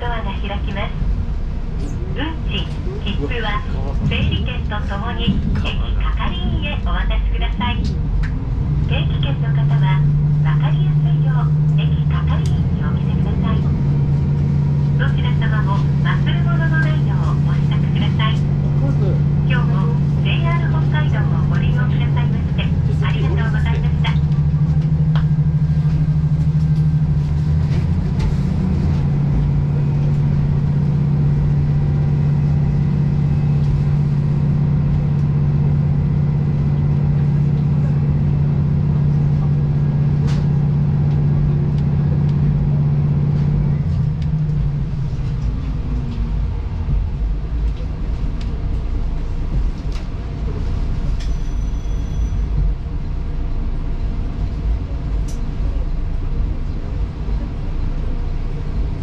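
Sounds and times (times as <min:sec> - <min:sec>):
diesel engine hum: 0:00.0 - 0:59.0.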